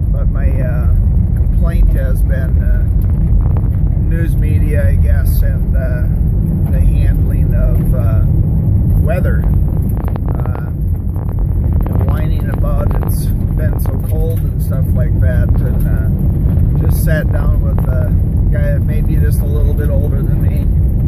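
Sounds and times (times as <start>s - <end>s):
man talking: 0.0s - 3.0s, 4.0s - 8.3s, 9.0s - 9.5s, 10.3s - 10.8s, 11.9s - 16.2s, 16.8s - 20.7s
tyres rumbling on road: 0.0s - 21.0s.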